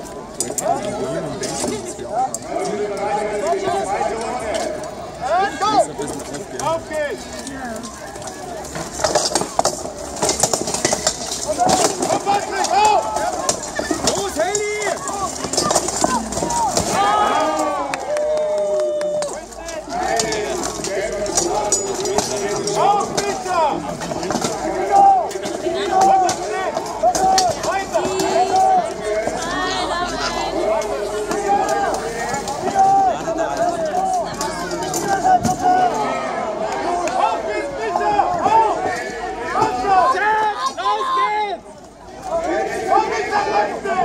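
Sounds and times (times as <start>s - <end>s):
spectators shouting and cheering: 0.0s - 8.7s, 11.4s - 44.0s
steel weapons clanking on armour: 7.4s - 17.8s, 19.3s - 29.4s.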